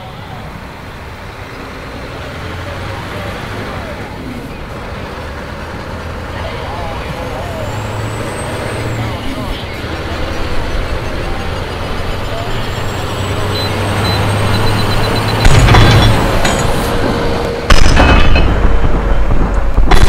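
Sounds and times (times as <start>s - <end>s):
diesel engine drone: 0.0s - 20.0s
road noise: 0.0s - 20.0s.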